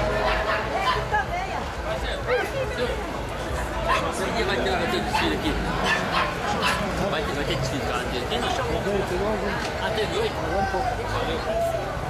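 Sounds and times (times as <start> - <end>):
hubbub of chatter: 0.0 - 12.0.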